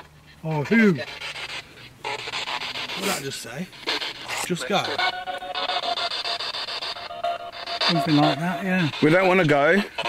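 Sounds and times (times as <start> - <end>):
pulsing radio static hiss: 0.0 - 10.0.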